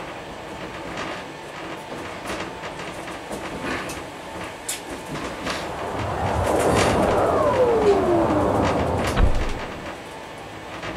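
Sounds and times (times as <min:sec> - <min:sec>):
train passing: 0:04.7 - 0:10.0
falling tone: 0:04.9 - 0:10.0.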